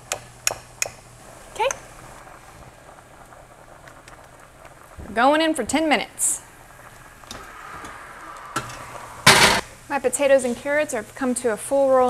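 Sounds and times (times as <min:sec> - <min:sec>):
pot boiling: 0:00.0 - 0:12.0.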